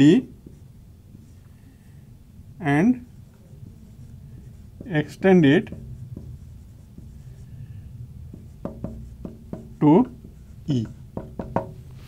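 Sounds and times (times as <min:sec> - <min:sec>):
marker scratching on whiteboard: 0:00.0 - 0:01.4, 0:03.0 - 0:11.9
marker tip tapping: 0:08.3 - 0:11.8.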